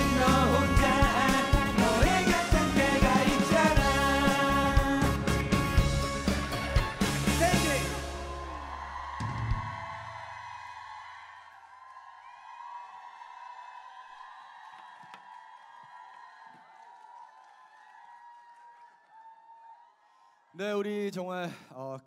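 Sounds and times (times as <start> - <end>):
pop band final chord: 0.0 - 9.8
audience cheering: 0.0 - 20.9.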